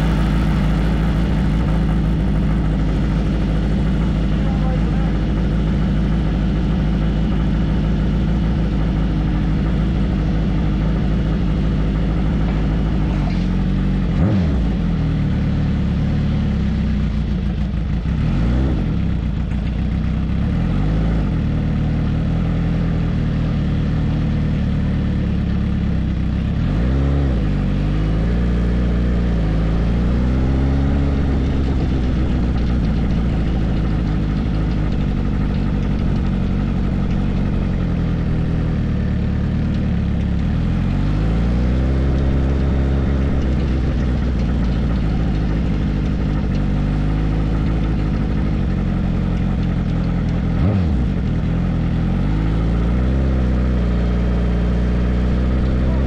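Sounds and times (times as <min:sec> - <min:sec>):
motorcycle engine idling and revving: 0:00.0 - 0:56.0.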